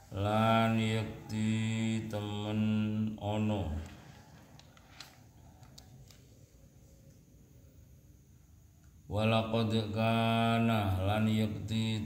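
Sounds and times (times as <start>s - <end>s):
man chanting: 0.0s - 4.3s, 9.1s - 12.0s.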